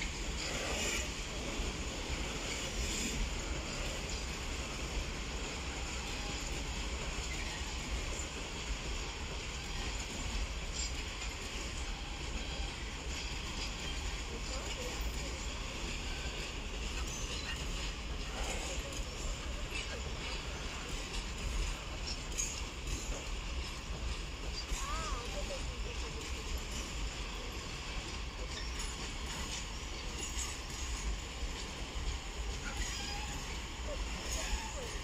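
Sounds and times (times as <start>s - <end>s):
train wheels rumbling on rail: 0.0s - 35.0s.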